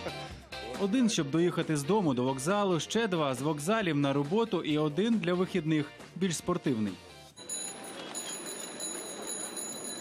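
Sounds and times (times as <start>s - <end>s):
bicycle bell trilling: 7.4s - 10.0s.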